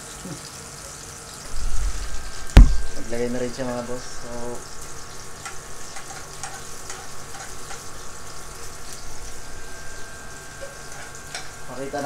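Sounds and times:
garlic sizzling in oil: 0.0s - 12.0s
spatulas tapping pans: 5.4s - 8.0s.

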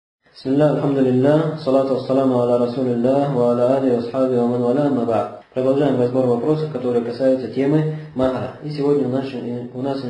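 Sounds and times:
man chanting melodically: 0.3s - 10.0s.

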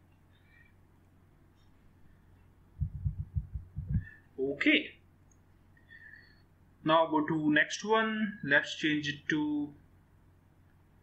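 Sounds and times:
faint steady hum: 0.0s - 11.0s
dull low thumps: 2.8s - 4.1s.

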